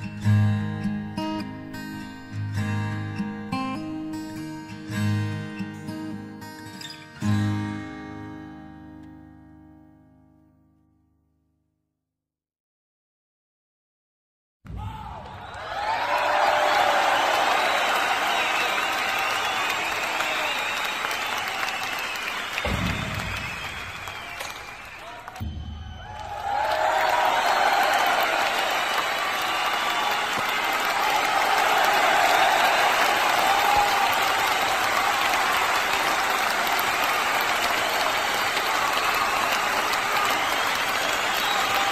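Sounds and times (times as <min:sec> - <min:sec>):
audience applauding: 0:15.1 - 0:41.9
low thumps: 0:25.4 - 0:26.7.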